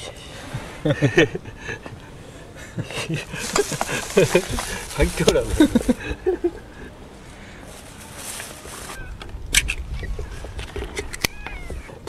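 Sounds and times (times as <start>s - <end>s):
cat meowing: 11.2s - 12.0s.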